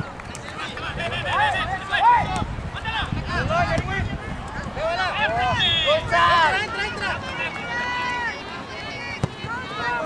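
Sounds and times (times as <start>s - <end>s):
spectators shouting: 0.8s - 10.0s.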